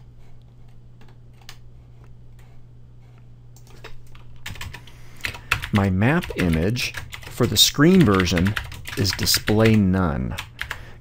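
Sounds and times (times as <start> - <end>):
steady low hum: 0.0 - 11.0
computer keyboard and mouse clicks: 1.0 - 1.6.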